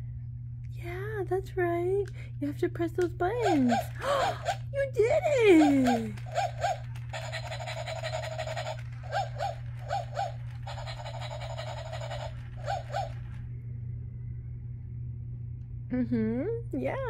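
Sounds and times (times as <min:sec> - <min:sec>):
toy dog electronic barking: 0:03.4 - 0:04.7, 0:05.4 - 0:13.4
rapid pulsing electronic sound: 0:05.5 - 0:13.4.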